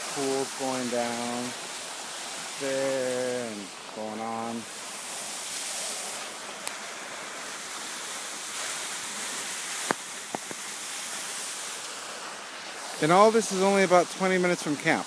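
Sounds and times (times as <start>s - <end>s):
waterfall rushing: 0.0s - 15.0s.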